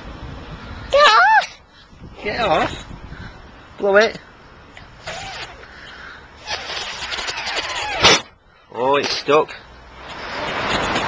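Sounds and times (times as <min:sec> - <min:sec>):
car passing: 0:09.5 - 0:11.0
rush of noise: 0:09.8 - 0:11.0.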